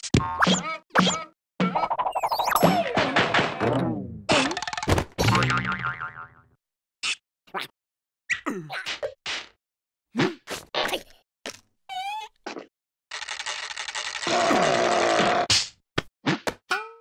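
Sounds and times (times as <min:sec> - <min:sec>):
music: 0:02.6 - 0:04.3
cartoon boing sound effects: 0:03.8 - 0:06.4.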